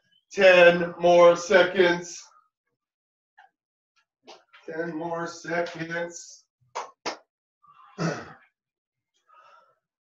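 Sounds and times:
faint breath: 9.2 - 9.9.

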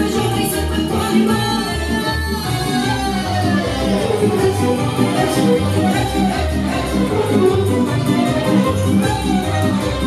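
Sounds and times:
woman singing into microphone: 0.0 - 5.7
folk dance music: 0.0 - 10.0.

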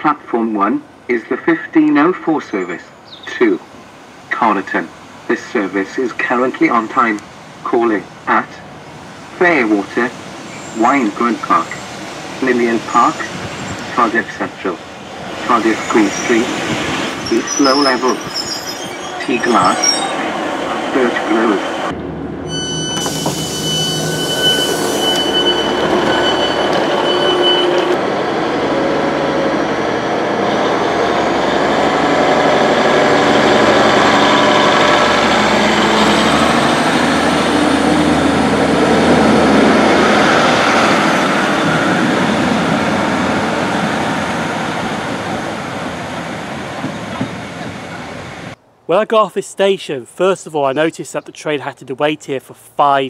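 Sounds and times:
diesel train engines whining: 0.0 - 48.8
door warning tones: 21.6 - 28.0.

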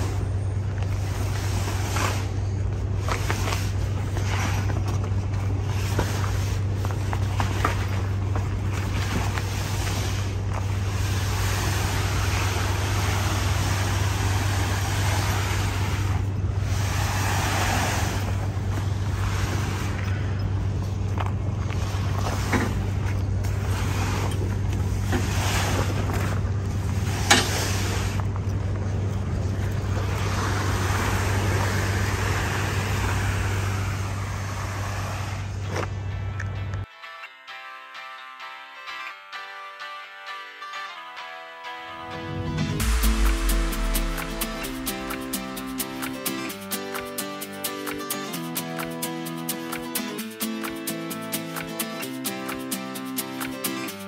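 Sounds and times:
tarp dragging over gravel: 0.0 - 20.9, 21.6 - 28.4, 29.4 - 35.9
idling diesel truck engine: 0.0 - 36.8.

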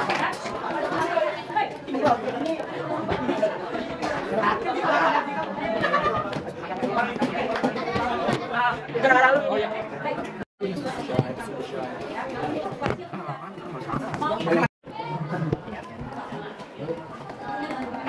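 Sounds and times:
students chattering: 0.0 - 18.0.

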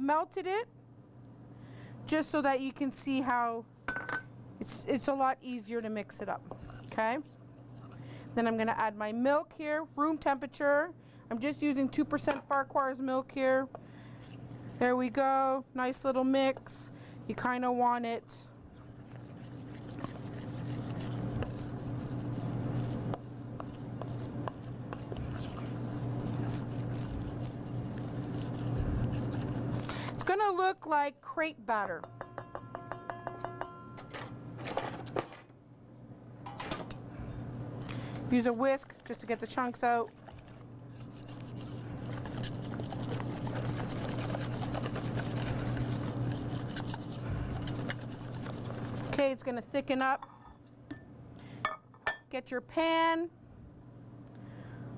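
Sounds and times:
steady low hum: 0.7 - 52.3
spoon stirring batter in metal bowl: 6.2 - 8.6, 16.0 - 30.8, 31.7 - 33.8, 38.3 - 50.2.

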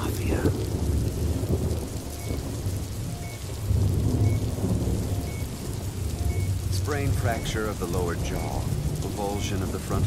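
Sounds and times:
rolling thunder rumble: 0.0 - 10.0
steady rain: 0.0 - 10.0
faint short beep: 6.2 - 6.5.

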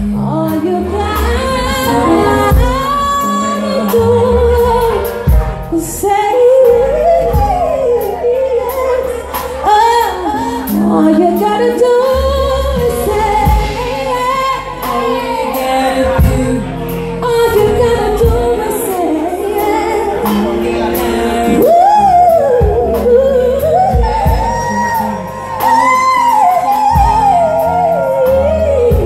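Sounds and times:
woman singing into microphone: 0.0 - 29.0
backing music with beat: 0.1 - 11.6.

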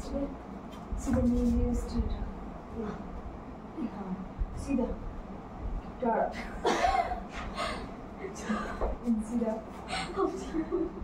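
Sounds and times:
woman speaking: 0.0 - 0.4, 1.0 - 5.1, 5.9 - 6.6, 8.2 - 10.9.

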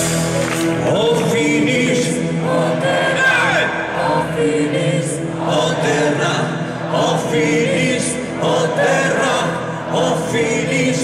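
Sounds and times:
folk-metal band playing live: 0.0 - 1.6.

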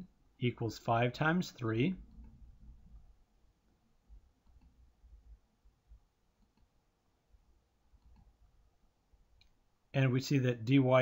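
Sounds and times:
faint clicks: 4.4 - 4.8, 6.4 - 6.8, 7.9 - 8.4, 9.3 - 9.6.

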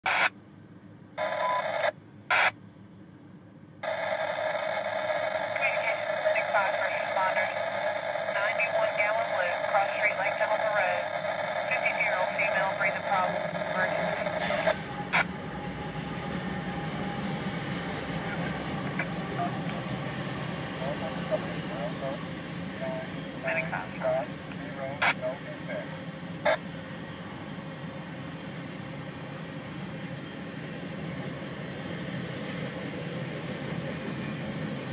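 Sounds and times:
radio voices chattering: 5.4 - 15.3, 18.2 - 26.6
freight train rumbling past: 5.4 - 34.9.

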